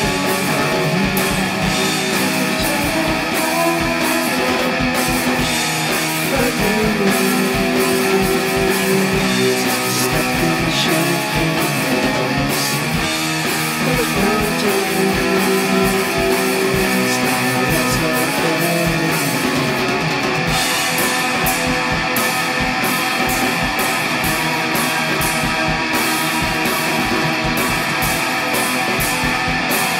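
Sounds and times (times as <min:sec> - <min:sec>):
distorted electric guitars: 0:00.0 - 0:29.9
steady rock drum beat: 0:00.0 - 0:29.9.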